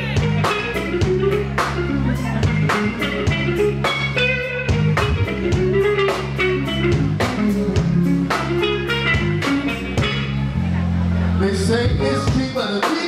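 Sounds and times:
drum kit: 0:00.0 - 0:10.6, 0:11.9 - 0:13.0
bass guitar: 0:00.0 - 0:13.0
lead electric guitar: 0:00.0 - 0:13.0.

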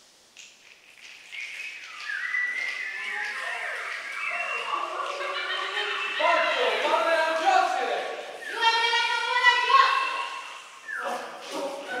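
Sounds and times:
choir of sliding calls: 0:01.3 - 0:12.0.

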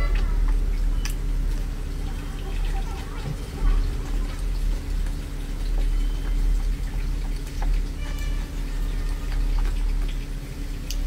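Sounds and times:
person chewing food: 0:00.0 - 0:11.0
steady low hum: 0:00.0 - 0:11.0.

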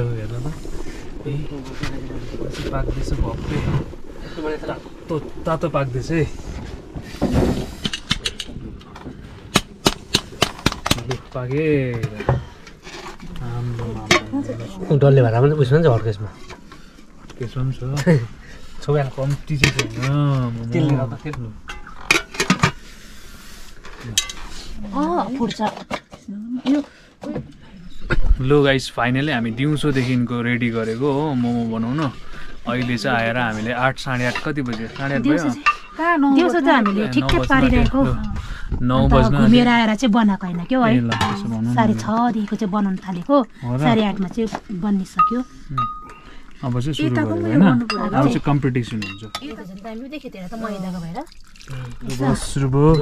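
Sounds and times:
wood fire crackling: 0:00.0 - 0:53.0.

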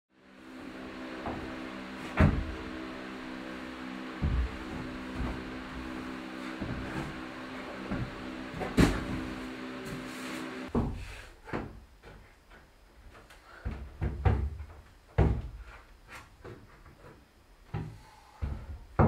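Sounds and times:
steady hum: 0:00.1 - 0:19.0
hands and feet knocking on climbing wall: 0:01.2 - 0:02.9, 0:04.1 - 0:09.4, 0:13.6 - 0:15.8, 0:17.6 - 0:19.0
loud thumps: 0:01.2 - 0:03.4, 0:04.0 - 0:09.5.

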